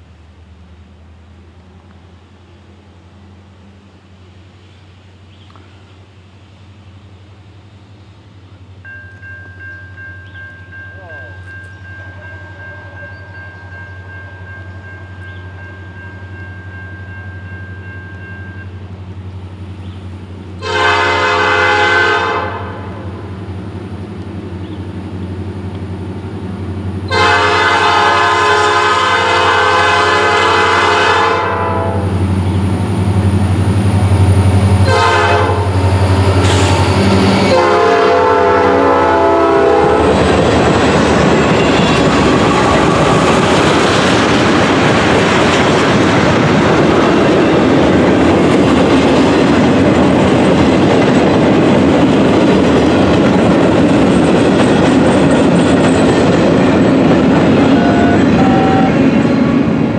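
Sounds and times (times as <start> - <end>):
diesel locomotive engine drone: 0.0 - 59.9
freight car wheel and rail noise: 0.0 - 59.9
locomotive air horn blasts: 20.6 - 23.0, 27.1 - 32.2, 34.8 - 40.2, 41.6 - 43.4, 57.6 - 59.2.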